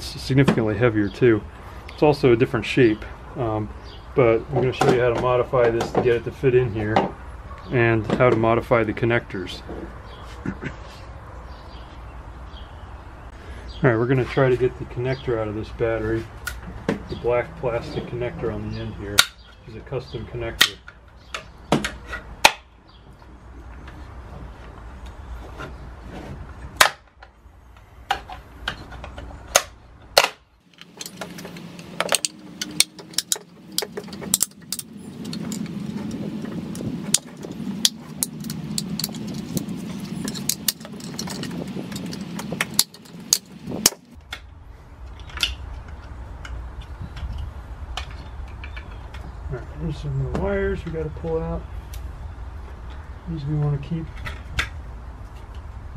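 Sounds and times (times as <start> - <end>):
steady low drone: 30.7 - 45.3.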